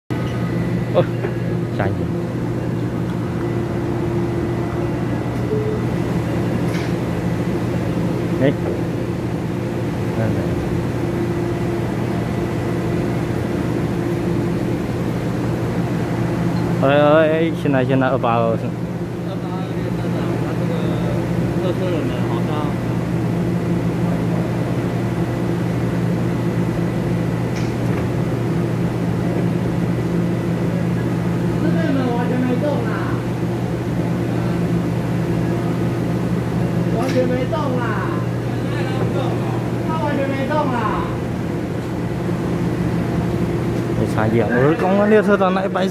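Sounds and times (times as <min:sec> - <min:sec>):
electric train humming: 0:00.1 - 0:45.9.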